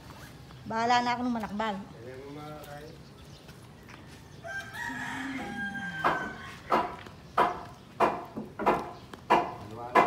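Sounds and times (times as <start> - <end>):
rooster crowing: 4.4 - 6.7
sharp knocks: 6.0 - 10.0.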